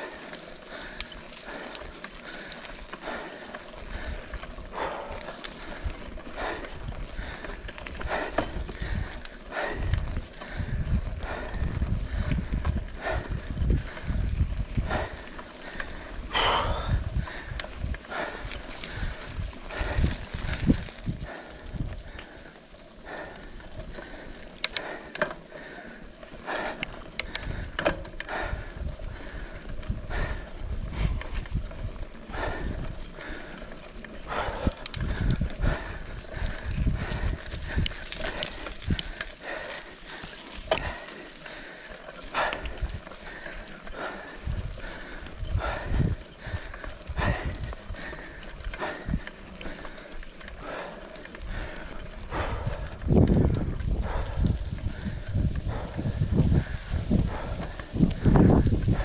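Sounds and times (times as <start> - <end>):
bike rattling over bumps: 0.0 - 59.0.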